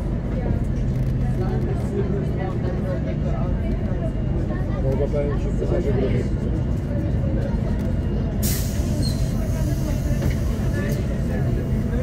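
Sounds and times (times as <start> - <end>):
bus diesel engine droning: 0.0 - 12.0.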